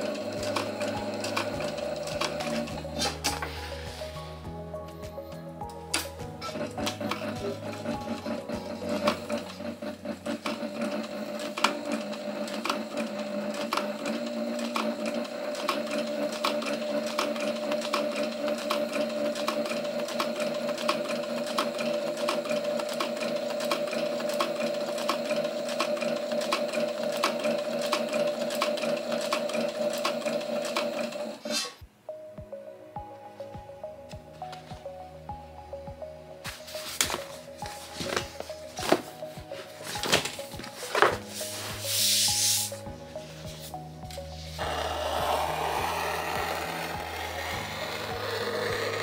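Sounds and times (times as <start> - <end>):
sewing machine motor hum: 0.0 - 3.6, 6.0 - 31.8, 44.5 - 49.0.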